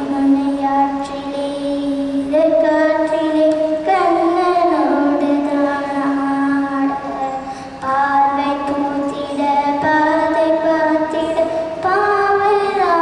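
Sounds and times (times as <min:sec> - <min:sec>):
girl singing into a microphone: 0:00.0 - 0:13.0.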